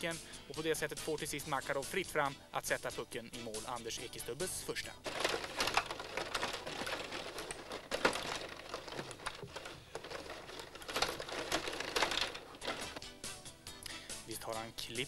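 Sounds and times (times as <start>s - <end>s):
music: 0.0s - 15.0s
table hockey rods rattling: 5.0s - 13.1s.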